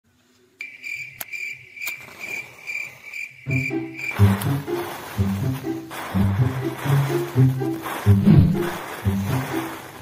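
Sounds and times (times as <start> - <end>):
insects trilling: 0.6 - 10.0.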